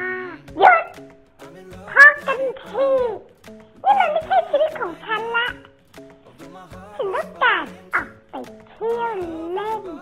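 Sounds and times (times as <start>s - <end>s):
dog-like yelping cries: 0.0s - 1.0s, 3.9s - 5.6s
background music with steady beat: 0.0s - 10.0s.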